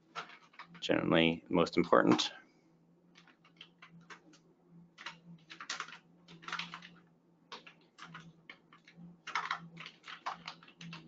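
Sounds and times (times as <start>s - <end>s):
faint low hum: 0.0s - 11.0s
keyboard typing clicks: 5.0s - 11.0s.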